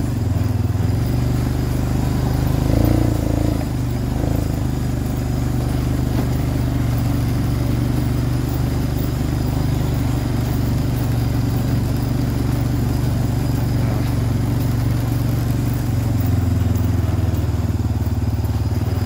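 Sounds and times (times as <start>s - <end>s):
atv engine droning: 0.0s - 19.0s.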